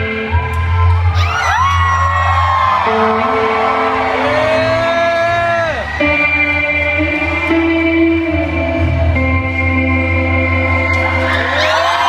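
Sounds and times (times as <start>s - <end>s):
electric guitar sliding notes: 2.6s - 11.8s.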